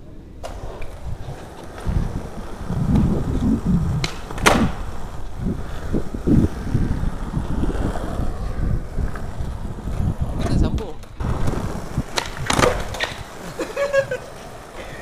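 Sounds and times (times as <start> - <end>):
skateboard rolling on concrete: 0.0 - 15.0.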